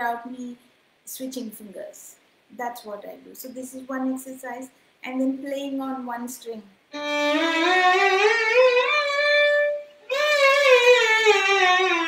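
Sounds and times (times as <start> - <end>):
violin sliding up and down: 7.0 - 12.0.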